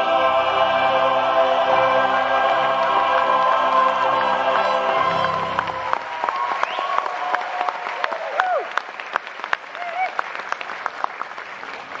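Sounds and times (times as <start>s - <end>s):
audience applauding and cheering: 2.0s - 12.0s.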